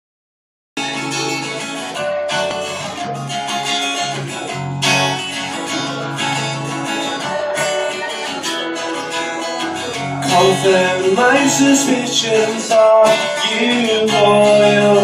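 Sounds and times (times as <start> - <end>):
acoustic guitar strumming chords: 0.8 - 15.0.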